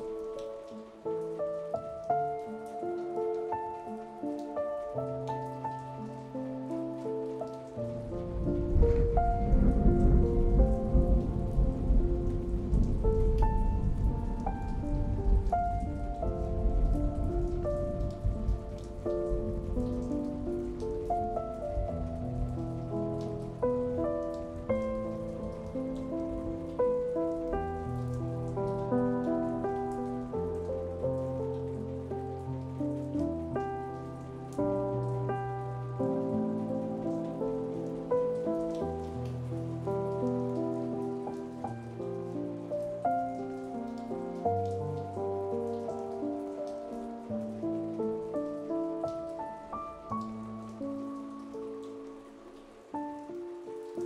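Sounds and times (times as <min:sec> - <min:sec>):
rain falling: 0:00.0 - 0:54.0
slow solo piano music: 0:00.0 - 0:54.0.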